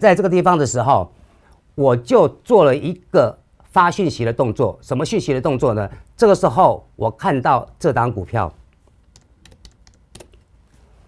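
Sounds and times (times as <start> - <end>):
computer keyboard keystrokes: 9.1 - 10.5.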